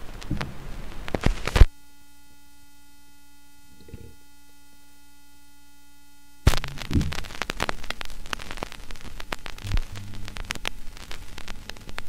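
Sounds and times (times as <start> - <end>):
mains hum: 0.0 - 12.0
vinyl crackles and pops: 0.0 - 12.0
needle landing thump: 6.5 - 7.2.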